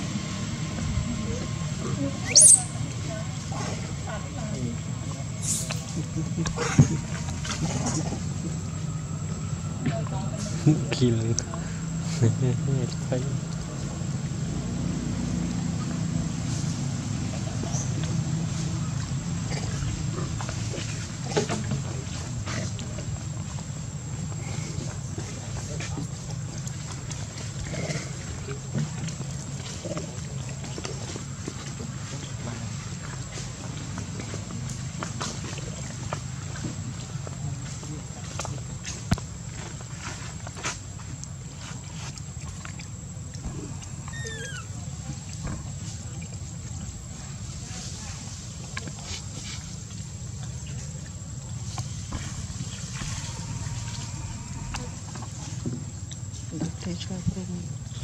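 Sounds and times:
short high falling call: 0:02.2 - 0:02.8.

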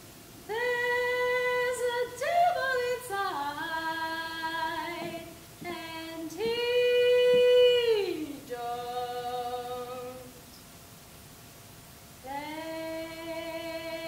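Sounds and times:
woman singing unaccompanied: 0:00.4 - 0:10.5, 0:12.2 - 0:14.0.

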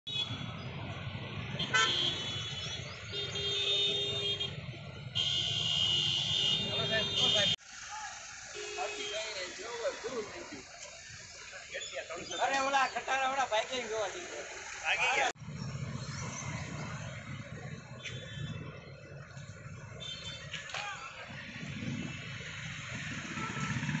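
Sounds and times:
traffic: 0:00.1 - 0:24.0
vehicle horn tone: 0:01.6 - 0:07.6, 0:08.4 - 0:09.7, 0:20.0 - 0:20.6, 0:23.2 - 0:24.0
vehicle engine running nearby: 0:06.5 - 0:24.0
people talking: 0:06.6 - 0:15.4.

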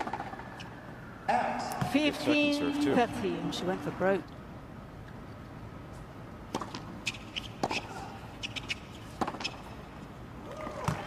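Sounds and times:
tennis ball hit by racket: 0:06.5 - 0:09.7.

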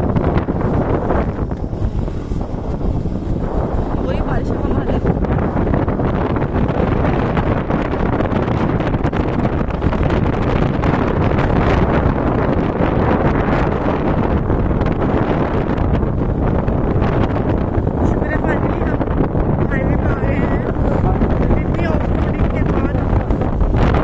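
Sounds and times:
motorbike running: 0:00.0 - 0:24.0
road noise: 0:00.0 - 0:24.0
wind buffeting microphone: 0:00.0 - 0:24.0.

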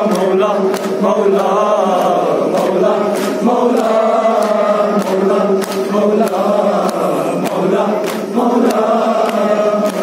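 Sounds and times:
chest-beating slaps: 0:00.0 - 0:10.0
men chanting lament: 0:00.0 - 0:10.0.

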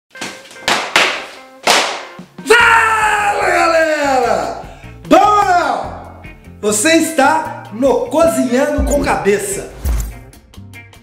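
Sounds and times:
sharp percussive hits: 0:08.8 - 0:10.4.

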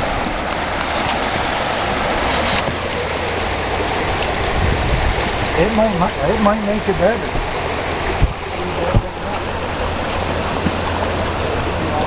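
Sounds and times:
river water rushing: 0:00.0 - 0:12.0.

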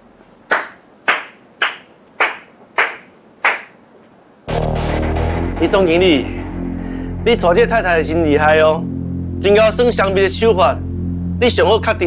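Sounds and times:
background music: 0:04.5 - 0:12.0.

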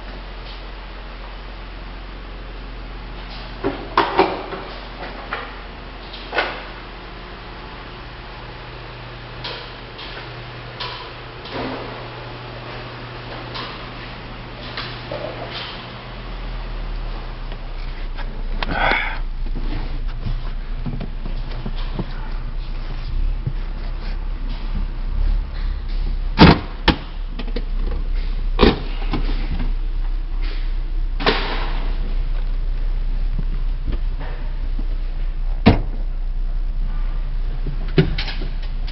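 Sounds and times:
car engine idling: 0:00.0 - 0:38.9
steady low hum: 0:00.0 - 0:38.9
clicks and scuffs of movement: 0:12.7 - 0:16.0, 0:16.9 - 0:26.2.

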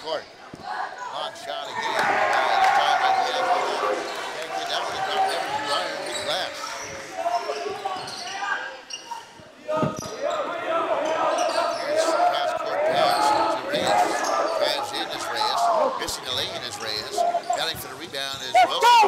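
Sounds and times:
voices in a hall: 0:00.0 - 0:19.0
sneakers squeaking: 0:03.9 - 0:19.0.

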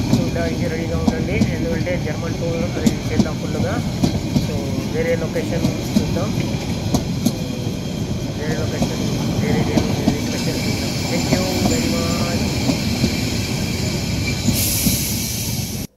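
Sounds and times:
steam hiss: 0:00.0 - 0:15.9
train carriages rumbling on rails: 0:00.0 - 0:15.9.

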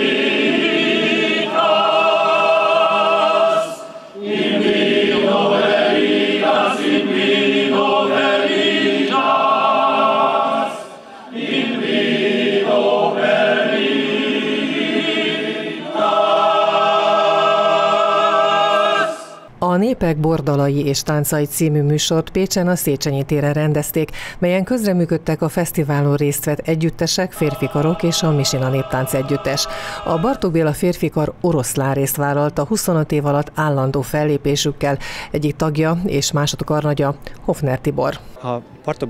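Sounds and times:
men's choir singing a cappella: 0:00.0 - 0:19.5, 0:27.3 - 0:30.7
singers breathing: 0:24.1 - 0:24.4, 0:29.6 - 0:30.2, 0:35.0 - 0:35.4.

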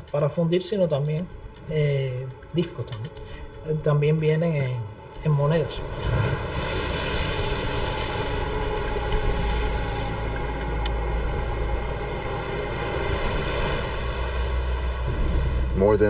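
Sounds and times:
waves breaking against rocks: 0:05.8 - 0:10.7.

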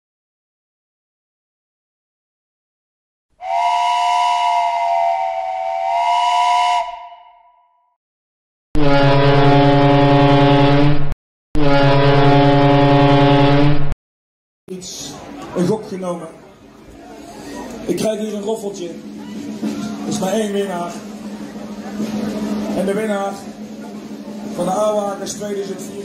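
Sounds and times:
deep horn blasts: 0:03.4 - 0:07.5, 0:08.8 - 0:13.8
multi-tone steam whistle: 0:03.4 - 0:07.7, 0:08.8 - 0:11.0, 0:11.6 - 0:13.7.

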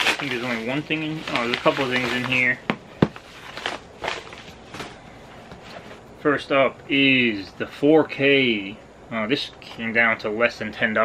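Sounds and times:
paper mailer rustling: 0:00.0 - 0:06.0.

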